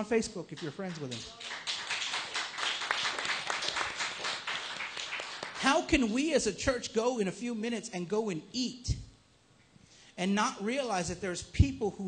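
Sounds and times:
preacher speaking: 0.0s - 1.4s, 5.6s - 9.1s, 10.2s - 12.0s
crowd applauding: 0.5s - 5.8s.

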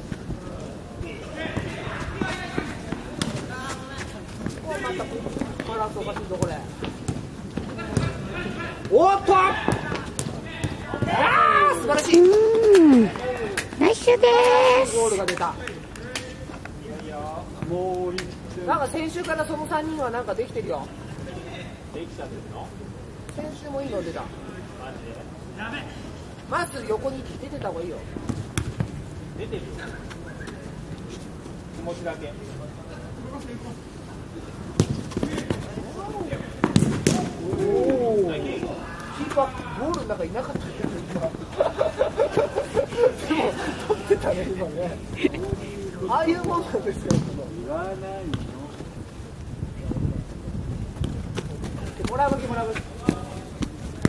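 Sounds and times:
players shouting: 7.8s - 15.3s
ball being kicked: 34.8s - 35.7s, 36.6s - 37.7s, 46.4s - 47.4s.

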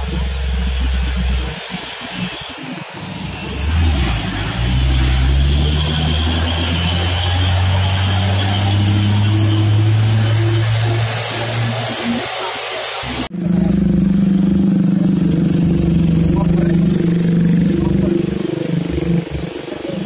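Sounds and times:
truck diesel engine pulling uphill: 0.0s - 20.0s.

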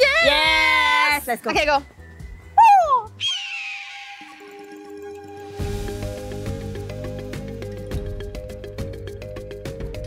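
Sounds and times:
background music sustained notes: 0.0s - 10.0s
bird squawk: 3.2s - 4.8s.

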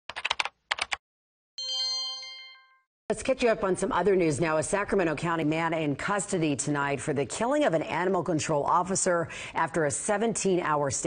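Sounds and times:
rapid typing clicks: 0.1s - 1.0s
bright ringing chime: 1.6s - 2.9s.

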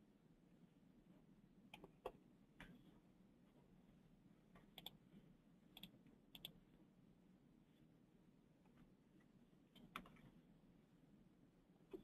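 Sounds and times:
faint low hum: 0.0s - 12.0s
soft clicks: 5.8s - 6.6s.

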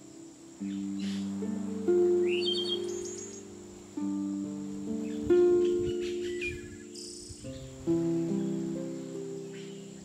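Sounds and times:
slow harp music: 0.0s - 10.0s
songbird chirping: 0.0s - 10.0s.

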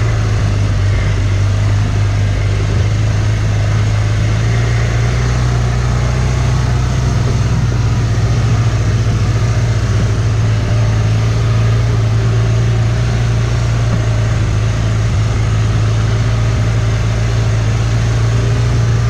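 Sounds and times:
utility vehicle engine running: 0.0s - 19.0s.

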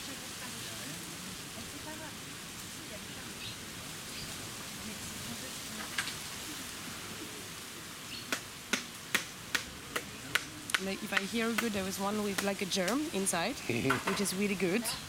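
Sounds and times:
background hiss: 0.0s - 15.0s
blade knocking on coconut: 8.3s - 13.0s.

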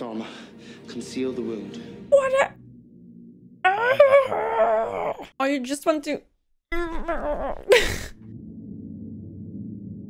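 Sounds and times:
woman whining: 3.7s - 5.3s, 6.7s - 8.1s.

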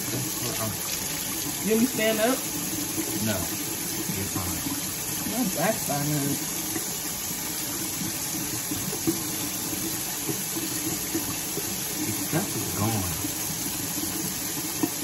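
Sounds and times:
faucet running into metal sink: 0.0s - 15.0s.

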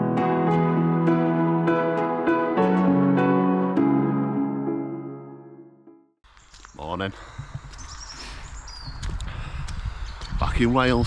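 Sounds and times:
music: 0.0s - 6.2s
bird chirps: 6.3s - 9.2s
wind rumbling on microphone: 7.2s - 11.0s.

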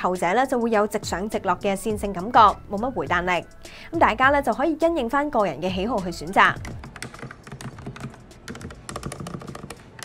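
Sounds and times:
mechanical keyboard typing: 6.5s - 10.0s.

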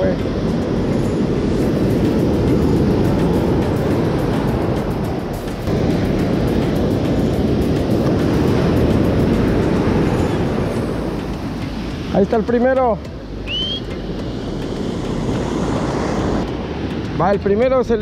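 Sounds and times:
surf breaking: 0.0s - 18.0s
wind on microphone: 0.0s - 18.0s.

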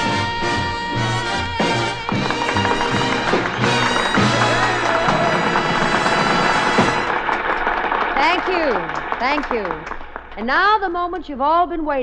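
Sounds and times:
swing band music: 0.0s - 7.3s
audience applauding: 0.0s - 10.6s.

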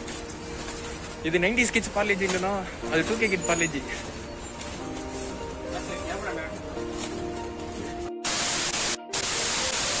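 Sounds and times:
static hiss bursts: 8.2s - 10.0s.

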